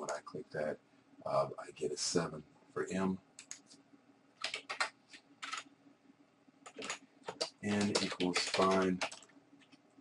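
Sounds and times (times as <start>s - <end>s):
computer keyboard typing: 3.4s - 3.6s, 4.4s - 5.7s, 6.6s - 9.8s.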